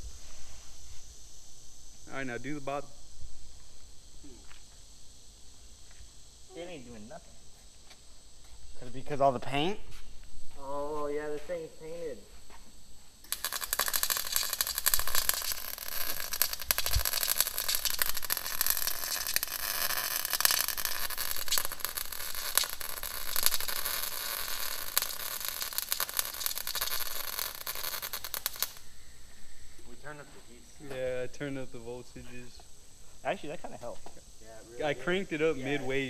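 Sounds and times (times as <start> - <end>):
welding arc crackling: 13.2 - 28.9.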